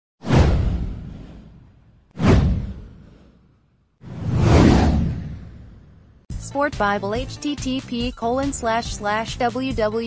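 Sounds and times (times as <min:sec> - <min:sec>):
deep rumble: 0:04.0 - 0:06.3.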